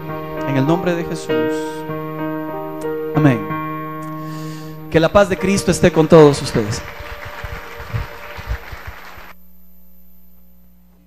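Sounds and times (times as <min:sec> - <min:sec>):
crowd applauding: 0:05.0 - 0:09.4.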